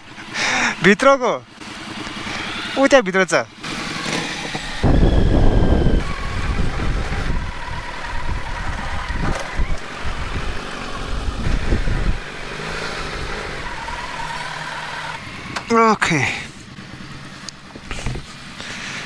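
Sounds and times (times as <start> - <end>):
motorcycle engine at low speed: 0.0 - 19.0
heavy uneven low rumble: 4.6 - 15.6, 16.2 - 19.0.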